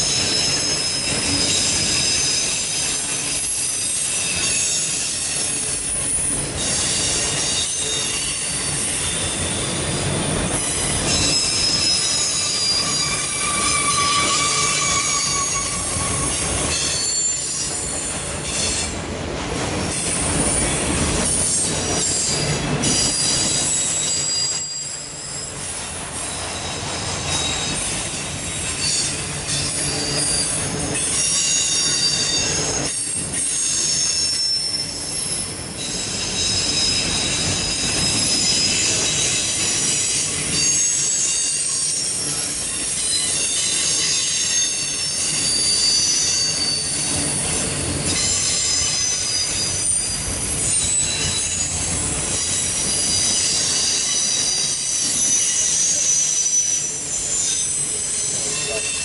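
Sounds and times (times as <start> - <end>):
high-pitched wheel squeals: 0.0 - 19.0, 20.5 - 59.0
rumble of train wheels on rail: 0.0 - 59.0.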